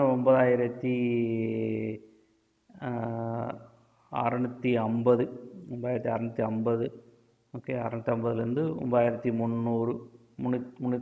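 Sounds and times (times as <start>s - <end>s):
man talking: 0.0s - 2.0s, 2.7s - 7.0s, 7.6s - 11.0s.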